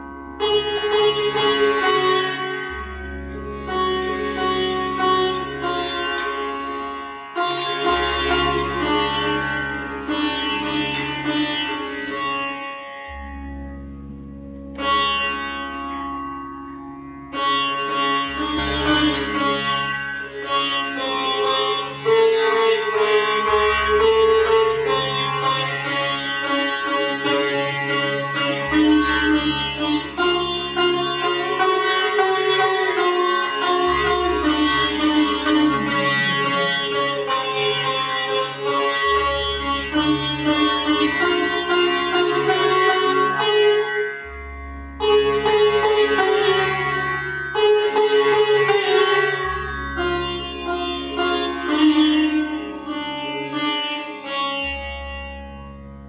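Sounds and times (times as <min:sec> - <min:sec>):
sitar playing: 0:00.0 - 0:56.0.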